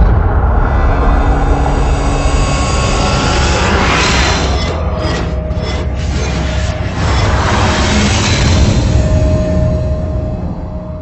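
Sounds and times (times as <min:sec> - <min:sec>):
loud rushing noise: 0:00.0 - 0:10.4
deep rumble: 0:00.0 - 0:11.0.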